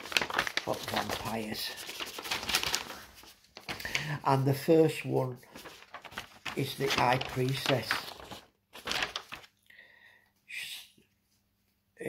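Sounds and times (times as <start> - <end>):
paper rustling: 0.0 - 9.6.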